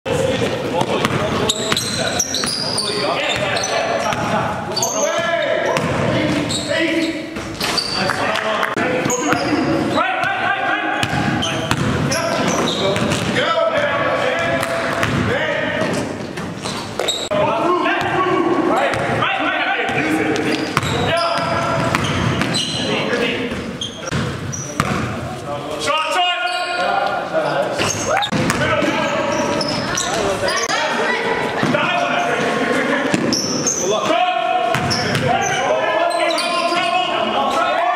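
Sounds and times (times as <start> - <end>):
players' voices: 0.0 - 37.9
sneakers squeaking: 0.1 - 37.7
basketball bouncing: 0.4 - 2.6, 5.7 - 6.5, 11.0 - 17.2, 19.9 - 22.6, 23.5 - 25.2, 28.3 - 30.0, 33.1 - 33.4, 34.7 - 35.3.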